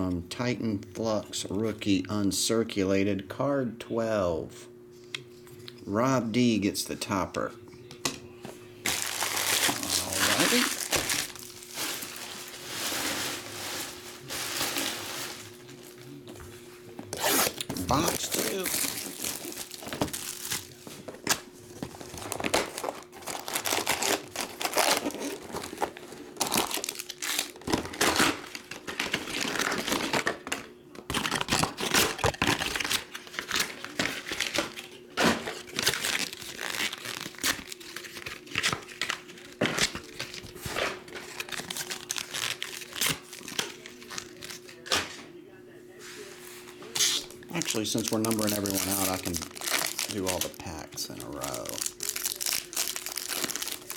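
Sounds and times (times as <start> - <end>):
plastic and foil packs crinkling: 8.8 - 16.2, 17.0 - 45.2, 46.8 - 53.9.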